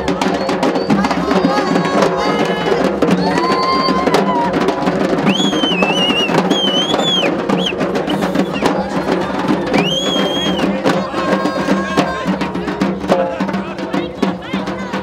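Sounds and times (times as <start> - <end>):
hand drums in fast rhythm: 0.0 - 15.0.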